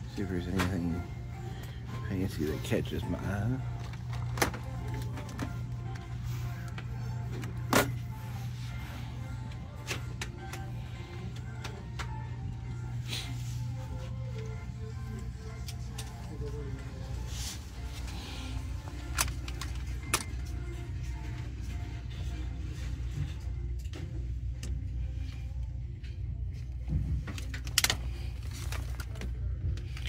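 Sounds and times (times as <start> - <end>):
faint background music: 0.0 - 30.0
steady low hum: 0.0 - 30.0.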